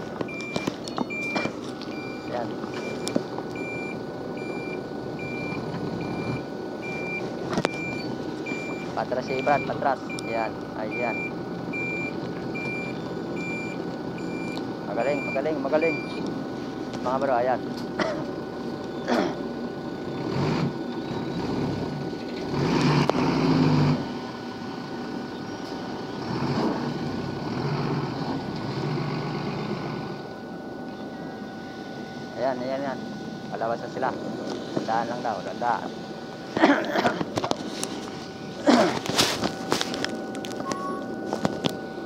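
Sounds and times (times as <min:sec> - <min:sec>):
diesel engine running: 0:00.0 - 0:42.0
reversing beeper: 0:00.3 - 0:16.3, 0:28.2 - 0:36.3, 0:37.6 - 0:42.0.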